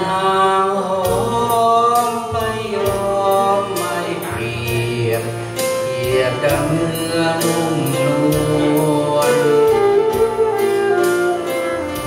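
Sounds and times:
backing music: 0:00.0 - 0:12.0
saxophone melody: 0:06.8 - 0:12.0.

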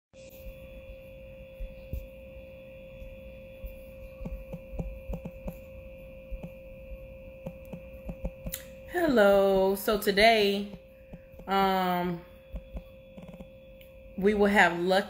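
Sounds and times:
steady electrical hum: 0:00.2 - 0:15.0
thin high whine: 0:00.2 - 0:15.0
faint irregular clicks: 0:12.5 - 0:14.0.

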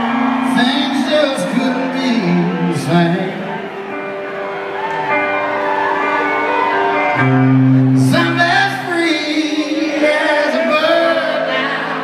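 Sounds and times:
electric guitar and band: 0:00.0 - 0:12.0.

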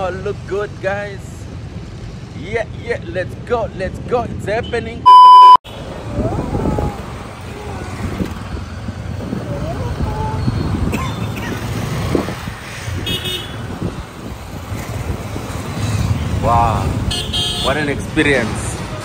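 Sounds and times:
wind on microphone: 0:06.0 - 0:15.7.

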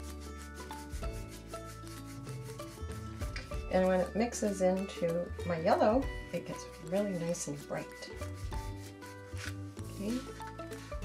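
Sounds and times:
paintbrush stroking paper: 0:00.0 - 0:11.0
soft background music: 0:00.0 - 0:11.0.

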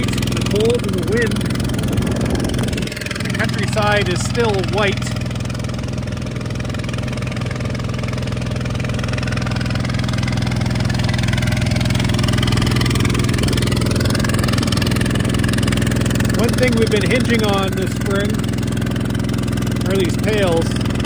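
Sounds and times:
truck engine idling: 0:00.0 - 0:21.0.

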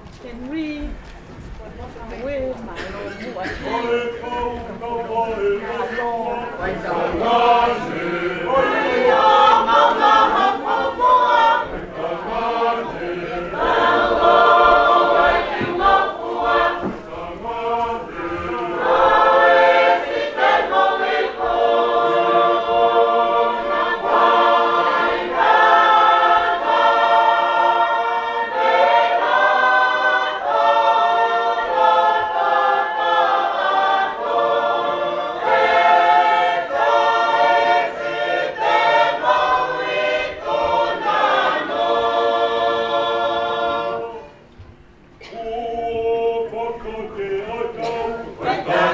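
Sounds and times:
choir singing a hymn: 0:02.7 - 0:48.9.

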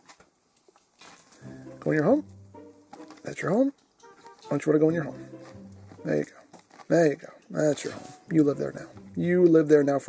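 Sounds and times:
man speaking: 0:01.6 - 0:02.3, 0:03.1 - 0:03.7, 0:04.4 - 0:05.4, 0:06.0 - 0:10.0.

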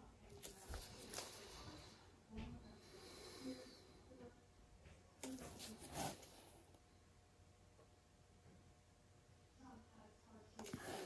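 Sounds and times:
soft handling rustles and clicks: 0:00.2 - 0:02.7.

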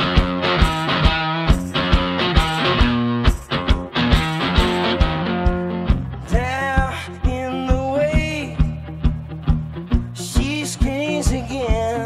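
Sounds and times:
guitar strumming: 0:00.0 - 0:12.0
man singing rock song: 0:04.4 - 0:09.2, 0:09.9 - 0:12.0.

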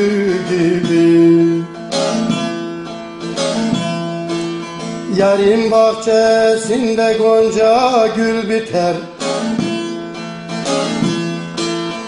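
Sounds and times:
plucked saz notes: 0:00.0 - 0:12.0.

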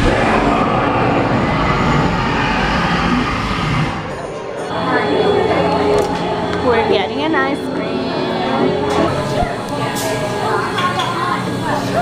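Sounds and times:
gas flame burst and roar: 0:00.0 - 0:04.7.

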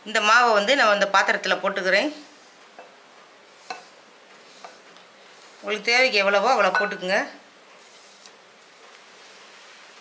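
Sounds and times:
flour pouring hiss: 0:03.3 - 0:10.0.

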